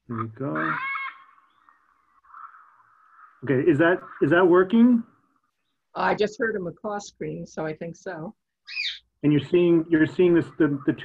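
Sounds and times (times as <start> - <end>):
faint macaw scream: 0.1 - 3.4, 8.7 - 9.1.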